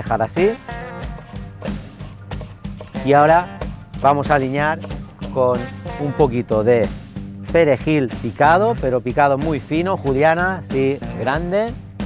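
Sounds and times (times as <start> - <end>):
background music: 0.0 - 12.0
knife chopping on wooden board: 0.8 - 5.7.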